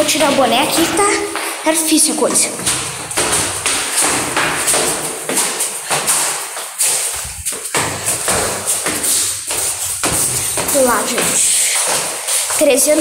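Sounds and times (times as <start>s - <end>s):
sandals slapping on stone steps: 0.0s - 13.0s.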